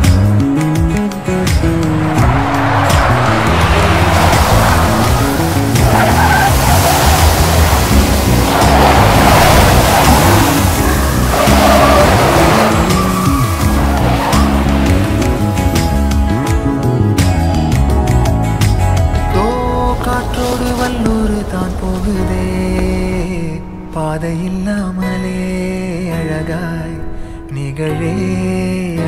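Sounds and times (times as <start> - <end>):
guitar-led background song: 0.0 - 29.0
waterfall rushing: 1.0 - 16.6.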